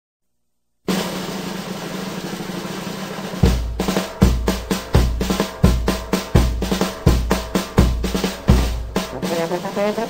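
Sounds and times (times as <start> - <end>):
drum kit beat: 0.9 - 10.0
snare drum roll: 0.9 - 10.0
bass drum hit: 3.2 - 9.9.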